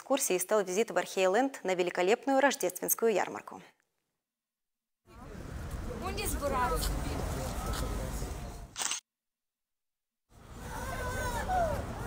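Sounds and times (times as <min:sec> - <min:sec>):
low outdoor background: 0:05.0 - 0:09.0, 0:10.3 - 0:12.0
smartphone camera shutter: 0:08.7 - 0:09.0.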